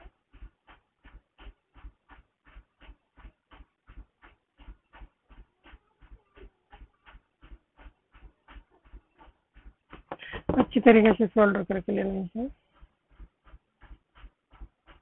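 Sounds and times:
rapid panting: 0.0s - 15.0s.

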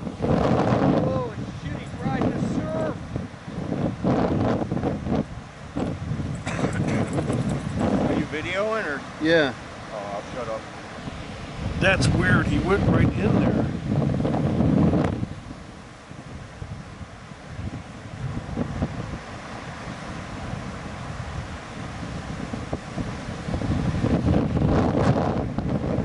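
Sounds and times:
surf breaking on beach: 0.0s - 26.0s
wind buffeting microphone: 0.0s - 26.0s.

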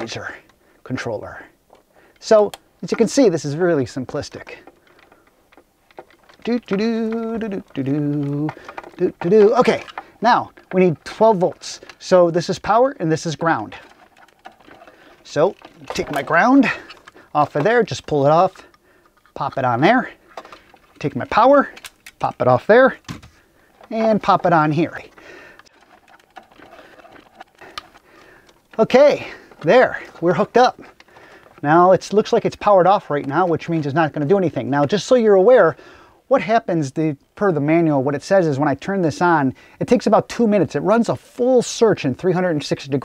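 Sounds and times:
faint rustling: 0.0s - 35.1s
connectors clicking: 1.6s - 35.1s.

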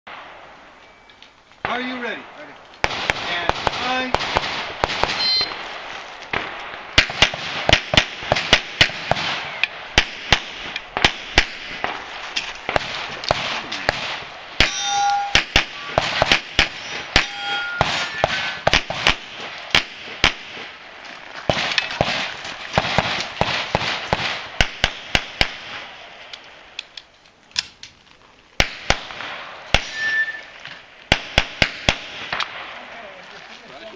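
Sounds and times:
pistol shots: 1.6s - 20.8s, 21.5s - 26.2s, 28.6s - 30.2s, 31.1s - 32.9s
electronic shot-timer beep: 5.1s - 5.6s, 14.6s - 16.0s.

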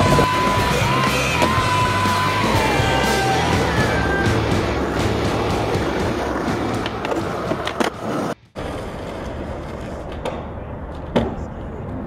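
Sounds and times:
skateboard wheels rolling on asphalt: 0.0s - 12.0s
skateboard clacks: 5.1s - 12.0s.

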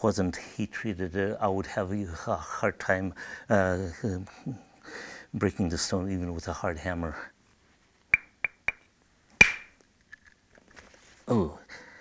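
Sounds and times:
antler striking stone with ringing: 8.2s - 9.8s.

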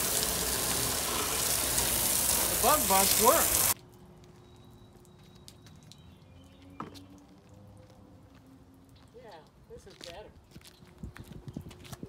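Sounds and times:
hose spraying water on metal: 0.0s - 3.8s.

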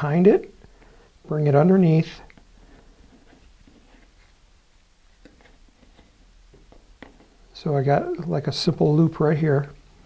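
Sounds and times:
faint rustling of cord: 0.6s - 7.6s.

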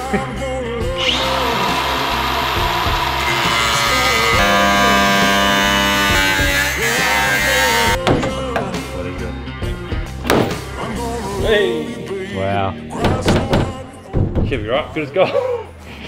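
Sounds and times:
rock music: 0.0s - 14.1s
angle grinder cutting steel: 1.0s - 8.0s
sheet metal knocks: 13.0s - 14.6s.

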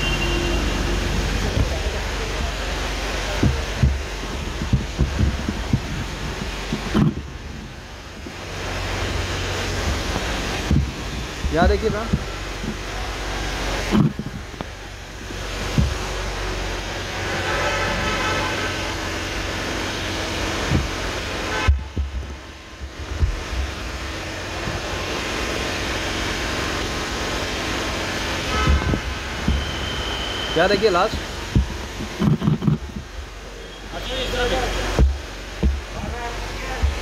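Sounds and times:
low rumble of road traffic: 0.0s - 37.0s
sharp knocks: 1.4s - 8.4s, 9.8s - 12.9s, 15.6s - 16.2s, 20.6s - 23.7s, 31.5s - 33.1s, 34.9s - 36.1s.

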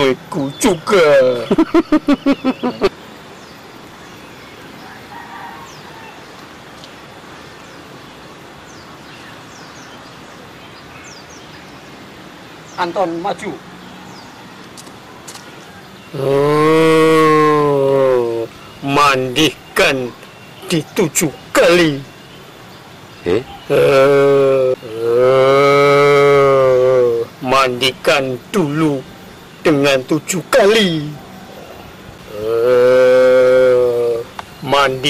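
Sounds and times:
low held vocal tone: 16.2s - 18.5s, 23.2s - 27.4s, 31.5s - 34.3s.

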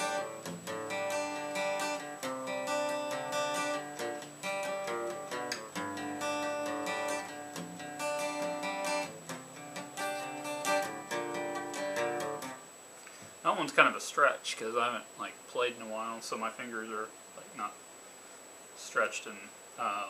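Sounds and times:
acoustic guitar strumming chords: 0.0s - 12.7s.

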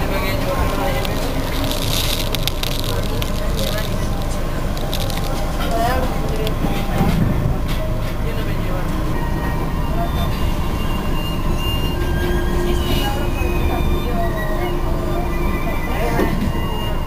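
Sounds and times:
train rumbling on rails: 0.0s - 17.0s
wheel and track clicks: 0.3s - 7.1s.

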